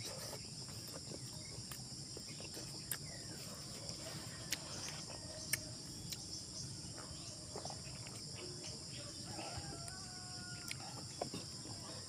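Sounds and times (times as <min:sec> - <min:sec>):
insects chirping: 0:00.0 - 0:12.0
person eating by hand: 0:00.0 - 0:12.0.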